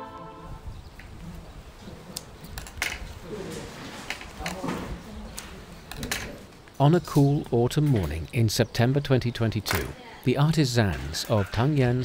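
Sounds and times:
faint background voices: 0.3s - 12.0s
bird cooing: 3.2s - 4.0s.

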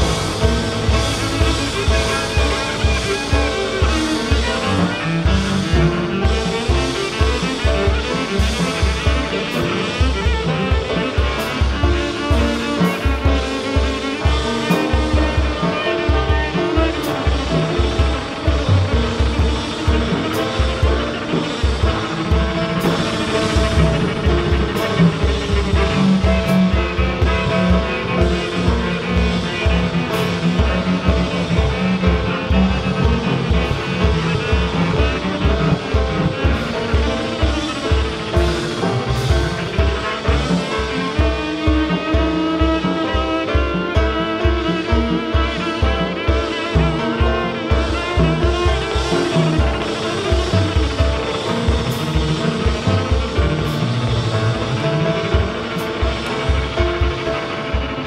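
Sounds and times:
drum kit with cymbals: 0.0s - 58.0s
grand piano playing jazz: 0.0s - 58.0s
plucked double bass: 0.0s - 58.0s.

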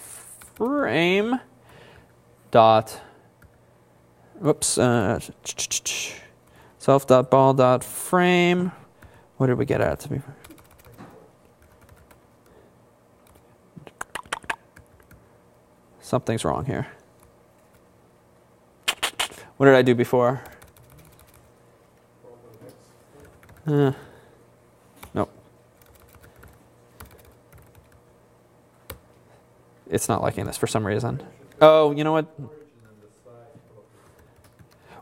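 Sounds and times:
computer keyboard typing: 10.4s - 11.0s, 11.6s - 12.2s, 13.2s - 13.4s, 14.1s - 15.2s, 20.5s - 21.5s, 23.2s - 23.7s, 25.8s - 28.0s, 32.7s - 33.1s, 34.1s - 34.8s.

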